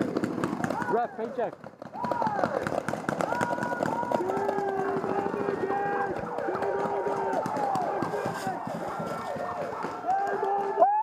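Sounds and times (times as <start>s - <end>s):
paintball marker shots: 0.0s - 10.7s
whistling of flying paintballs: 1.8s - 10.8s.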